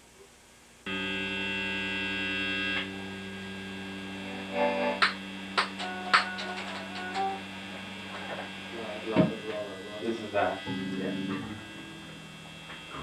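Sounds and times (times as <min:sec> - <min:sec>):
amplifier electrical hum: 0:00.0 - 0:13.0
held guitar note: 0:00.9 - 0:13.0.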